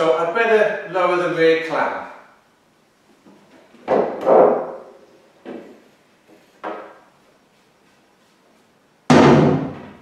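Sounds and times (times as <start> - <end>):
wooden knocks and clatter: 3.5 - 5.8, 6.6 - 7.1.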